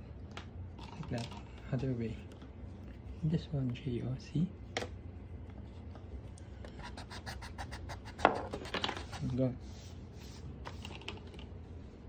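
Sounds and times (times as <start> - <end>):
pencil scratching on paper: 6.8 - 9.4
pencil tap: 7.9 - 9.0.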